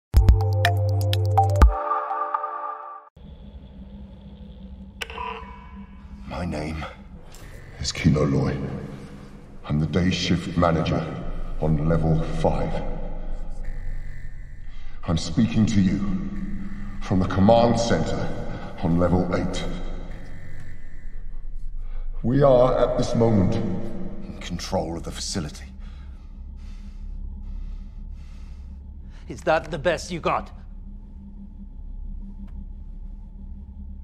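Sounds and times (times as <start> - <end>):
low steady drone: 3.1 - 34.0.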